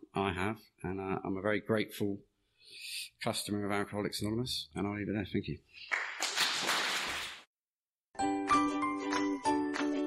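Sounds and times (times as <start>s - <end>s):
audience applause: 5.9s - 7.4s.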